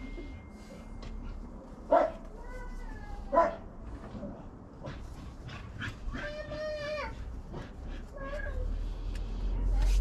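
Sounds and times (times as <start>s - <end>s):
dog whining: 6.1s - 7.3s.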